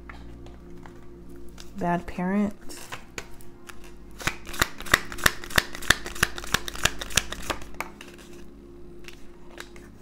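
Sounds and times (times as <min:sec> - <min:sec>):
cards being shuffled: 0:02.7 - 0:10.0.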